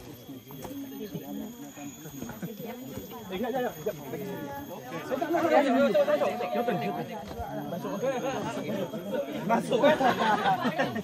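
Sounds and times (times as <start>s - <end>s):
faint high-pitched tone: 0.0s - 10.2s
people chatting: 0.0s - 11.0s.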